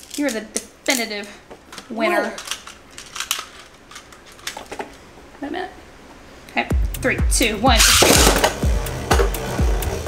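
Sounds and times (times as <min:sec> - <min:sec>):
background music with steady beat: 0:06.7 - 0:10.0.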